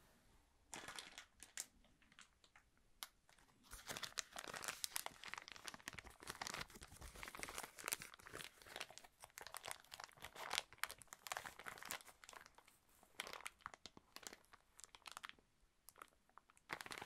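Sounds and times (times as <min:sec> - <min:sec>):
plastic packaging crinkling: 0:00.7 - 0:17.0.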